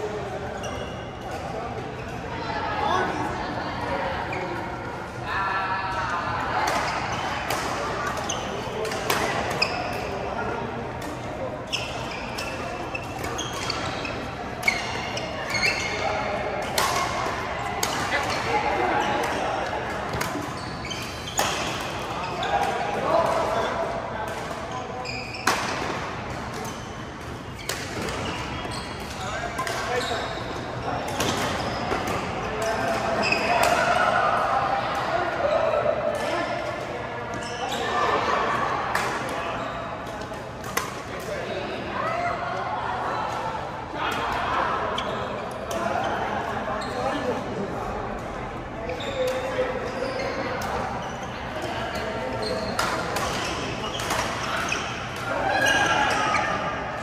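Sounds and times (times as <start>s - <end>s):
voices echoing in hall: 0.0s - 57.0s.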